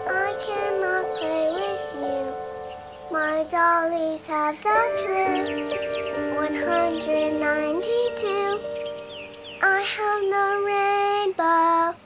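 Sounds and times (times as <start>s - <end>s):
high singing voice: 0.0s - 12.0s.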